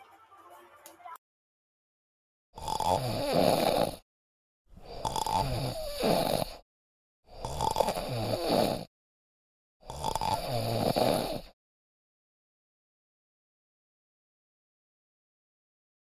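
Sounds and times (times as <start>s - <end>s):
person snoring: 2.6s - 4.1s, 4.8s - 6.6s, 7.3s - 8.9s, 9.8s - 11.6s.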